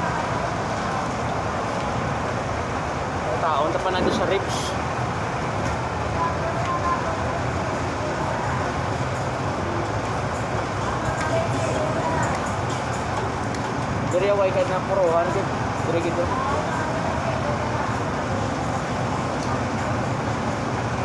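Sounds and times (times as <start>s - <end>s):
road traffic: 0.0s - 21.0s.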